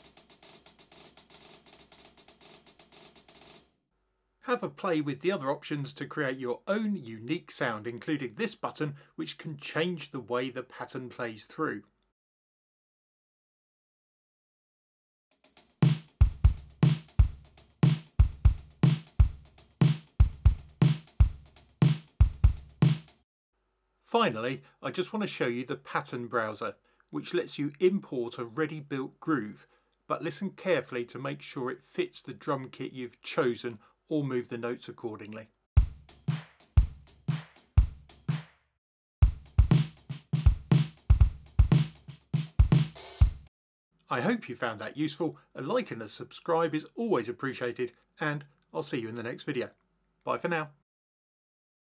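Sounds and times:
kick and snare drums: 0.0s - 3.6s, 15.8s - 23.2s, 35.8s - 38.6s, 39.2s - 43.5s
closed hi-hat hits: 0.0s - 3.7s, 15.6s - 23.2s, 39.4s - 43.5s.

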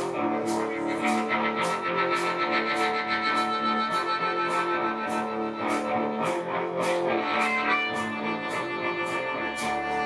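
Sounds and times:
bass: 0.0s - 10.0s
drums with cymbal beat: 0.0s - 10.0s
electric guitar: 0.0s - 10.0s.

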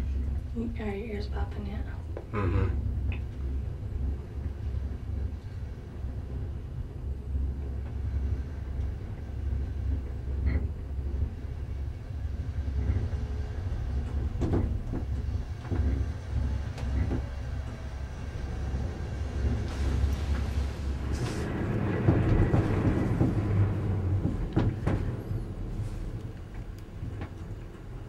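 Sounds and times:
cable car low rumble: 0.0s - 28.0s
sharp clicks and knocks: 14.0s - 16.1s, 16.7s - 17.3s.

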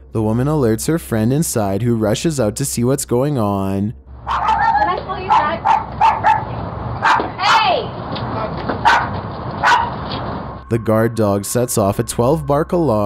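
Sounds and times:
dog barking: 4.2s - 7.6s, 8.4s - 10.0s.

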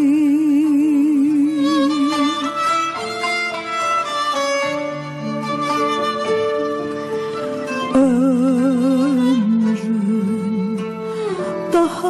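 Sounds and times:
violin melody: 0.0s - 12.0s.

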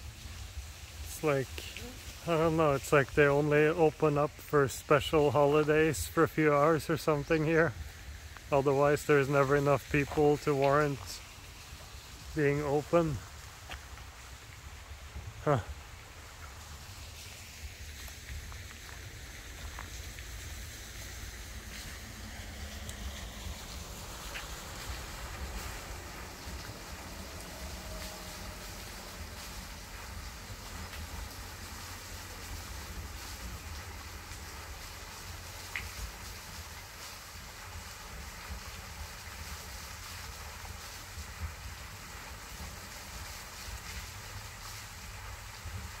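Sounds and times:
faint ticks: 35.6s - 36.4s.

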